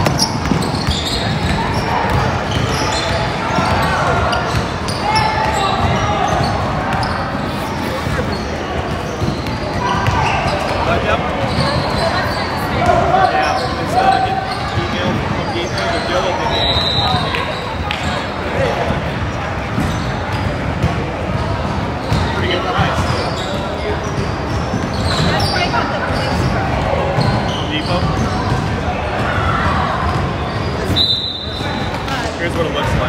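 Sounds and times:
voices calling out: 0:00.0 - 0:33.0.

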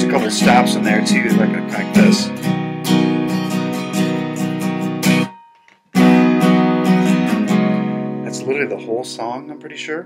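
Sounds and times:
acoustic guitar strumming chords: 0:00.0 - 0:09.8.

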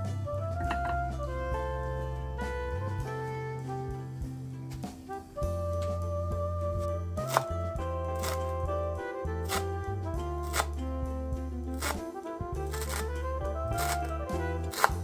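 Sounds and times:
instrumental background music: 0:00.0 - 0:15.0.

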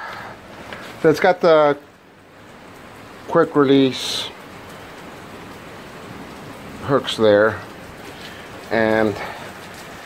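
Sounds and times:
heavy rain hiss: 0:00.0 - 0:10.0
man's voice: 0:08.7 - 0:09.4.

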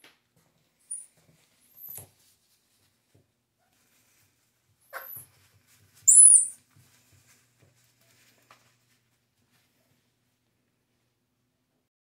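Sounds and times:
baby monkey squeaking and calling: 0:06.1 - 0:06.6.

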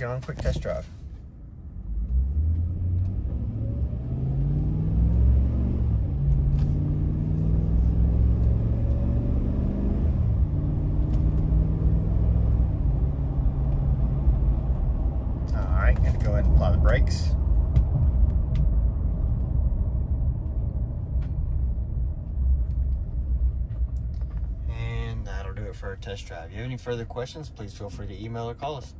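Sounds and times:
truck engine accelerating: 0:01.8 - 0:26.2.

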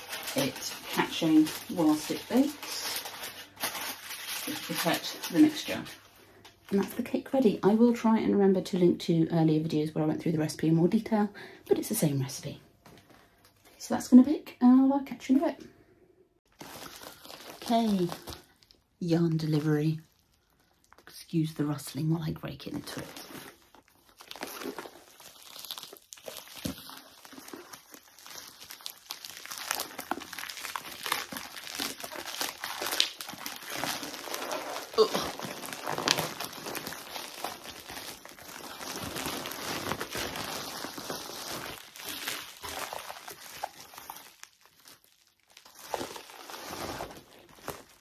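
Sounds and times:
plastic bag rustling and crinkling: 0:00.0 - 0:08.0, 0:16.5 - 0:48.0.

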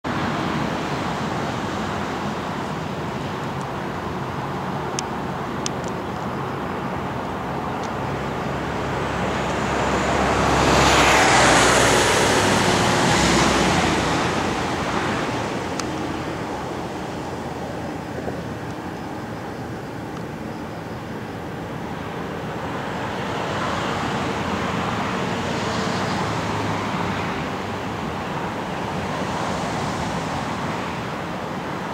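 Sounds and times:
road traffic noise: 0:00.0 - 0:31.9
vehicle passing close by: 0:07.0 - 0:20.1, 0:22.0 - 0:31.9.

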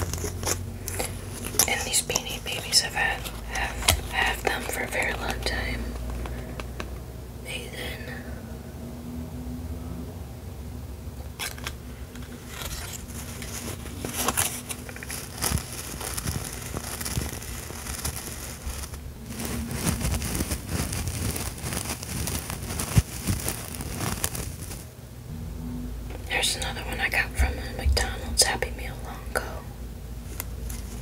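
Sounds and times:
plush toy rustling and crinkling: 0:00.0 - 0:07.0, 0:11.4 - 0:24.9, 0:30.2 - 0:31.0.

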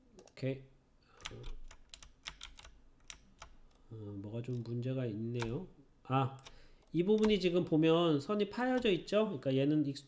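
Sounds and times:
keyboard and mouse clicks: 0:01.2 - 0:03.8, 0:05.4 - 0:05.6, 0:06.4 - 0:07.6, 0:08.7 - 0:09.0.

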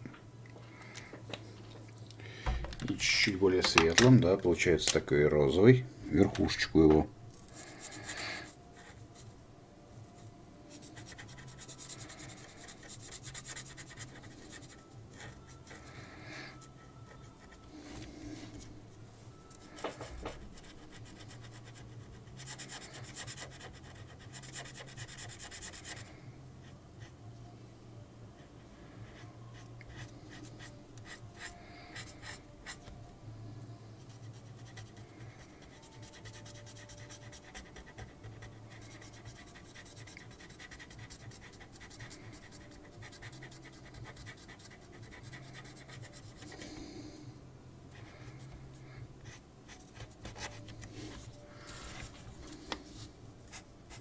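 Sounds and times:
felt-tip pen scratching on paper: 0:10.7 - 0:15.9, 0:19.6 - 0:26.1, 0:34.0 - 0:46.6, 0:49.2 - 0:52.2.

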